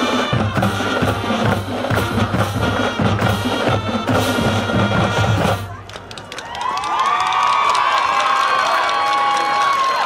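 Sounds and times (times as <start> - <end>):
marching band brass and drums: 0.0 - 6.1
crowd cheering and whooping: 6.2 - 10.0.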